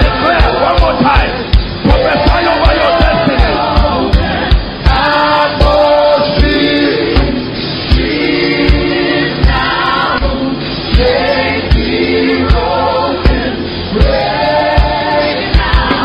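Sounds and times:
choir singing over a band: 0.0s - 16.0s
steady kick drum beat: 0.0s - 16.0s.

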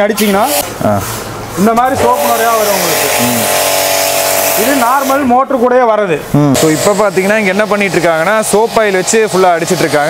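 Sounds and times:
man speaking: 0.0s - 3.6s, 4.6s - 10.0s.

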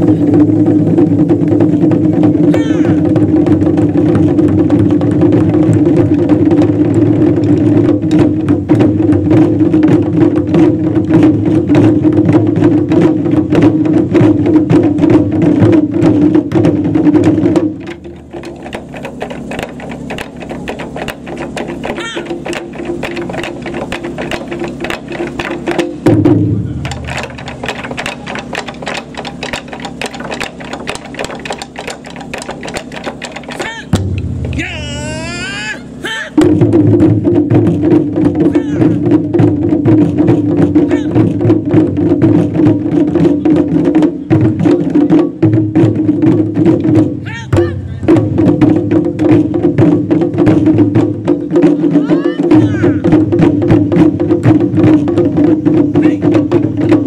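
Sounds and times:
drum ensemble playing: 0.0s - 57.0s.

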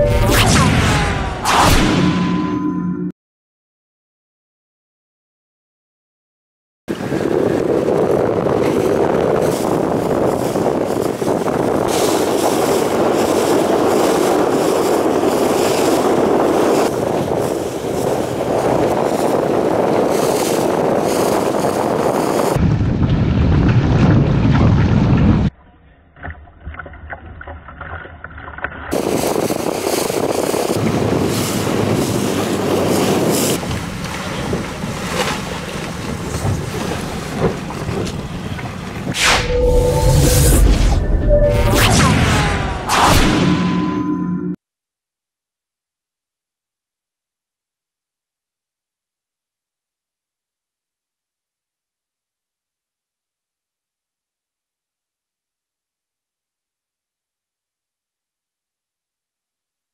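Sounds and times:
wind buffeting microphone: 6.9s - 25.5s, 28.9s - 41.2s
water rushing and splashing: 28.9s - 40.2s
whoosh with short tones: 39.1s - 44.6s.

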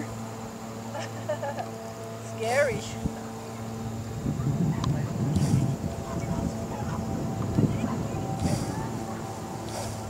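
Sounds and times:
wind rumbling on microphone: 2.6s - 10.0s.

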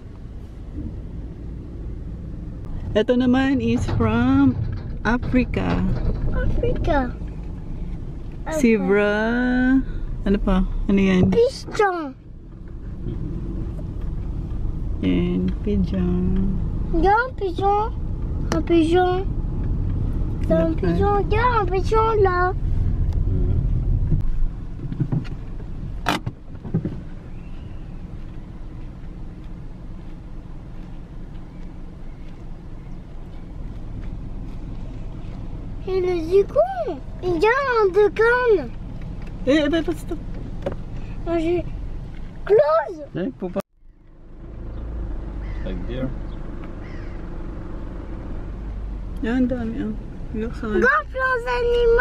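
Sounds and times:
car rolling rumble inside cabin: 0.0s - 52.0s.

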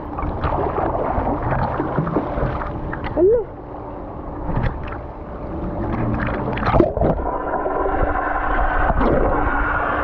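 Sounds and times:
pool water sloshing: 0.0s - 3.3s, 4.3s - 9.6s.

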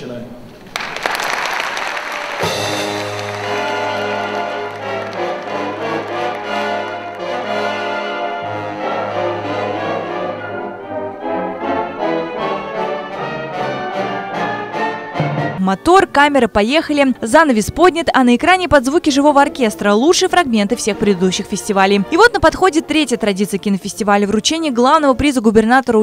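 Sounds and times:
wind orchestra playing: 2.4s - 15.7s, 19.1s - 24.6s.

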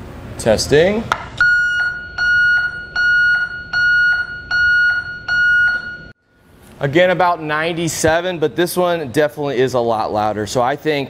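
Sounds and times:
backup alarm beeping: 1.4s - 6.2s.

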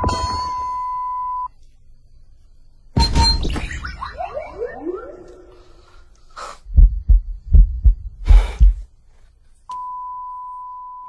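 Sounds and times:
long high flatline beep: 0.0s - 1.5s, 3.0s - 6.0s, 9.8s - 11.0s
heartbeat thumps: 6.6s - 8.9s.

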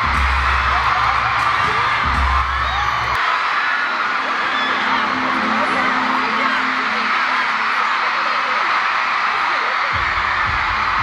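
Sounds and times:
concert music with heavy bass beat: 0.0s - 11.0s
crowd screaming and cheering: 0.0s - 11.0s.

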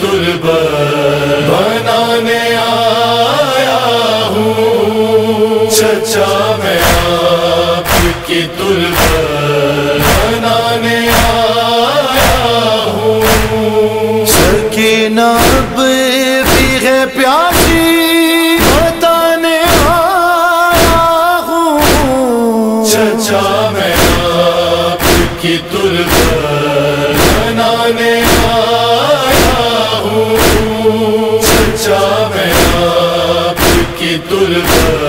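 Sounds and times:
male chorus humming chords: 0.0s - 35.0s
men chanting held notes: 0.0s - 35.0s
chest-beating thumps: 6.8s - 7.2s, 7.8s - 9.4s, 10.0s - 11.5s, 13.2s - 13.6s, 14.3s - 14.7s, 15.4s - 15.8s, 16.4s - 16.8s, 17.5s - 17.9s, 18.6s - 19.0s, 19.7s - 20.0s, 20.8s - 21.1s, 21.8s - 22.2s, 23.9s - 24.4s, 25.0s - 26.5s, 27.1s - 27.6s, 28.2s - 28.7s, 29.3s - 35.0s.

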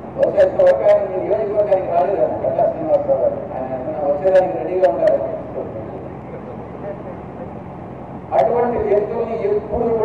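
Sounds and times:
outdoor crowd din: 0.1s - 10.0s
faint voices: 0.2s - 10.0s.

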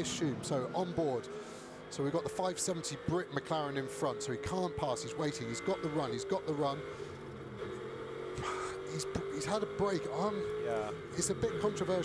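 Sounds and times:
car engine at constant revs: 0.0s - 12.0s.

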